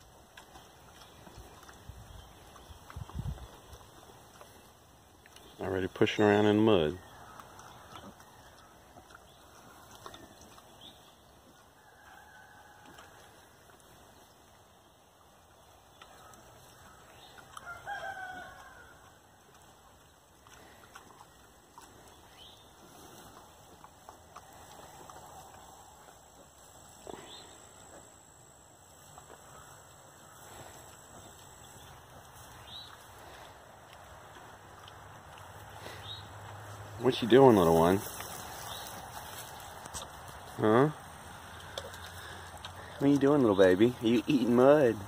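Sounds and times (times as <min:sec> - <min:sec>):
faint farmyard sounds: 0:00.0 - 0:45.0.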